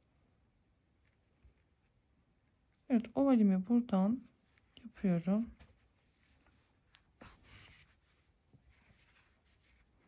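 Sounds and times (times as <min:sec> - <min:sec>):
yarn rustling through fabric: 0:00.9 - 0:10.0.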